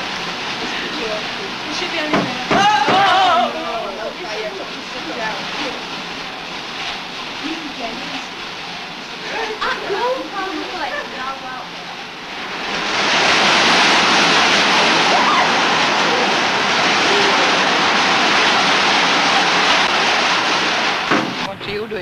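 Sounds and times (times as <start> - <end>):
power looms running: 0.0 - 22.0
voices: 0.1 - 6.0, 7.4 - 12.1, 14.8 - 19.6.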